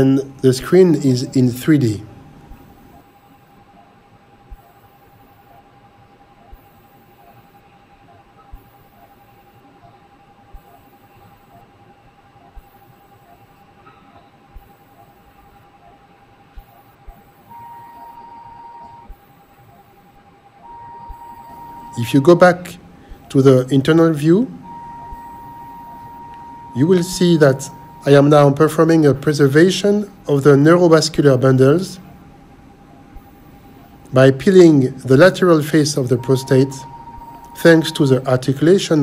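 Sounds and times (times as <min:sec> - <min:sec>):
steady high electronic tone: 0:04.4 - 0:32.2, 0:33.0 - 0:39.0
higher electronic tone: 0:17.4 - 0:19.2, 0:20.6 - 0:29.1, 0:36.0 - 0:38.3.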